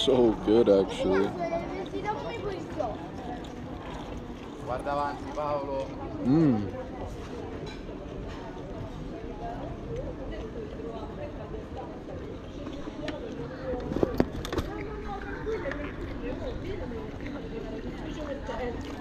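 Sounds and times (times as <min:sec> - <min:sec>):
murmur of conversation: 0:00.0 - 0:19.0.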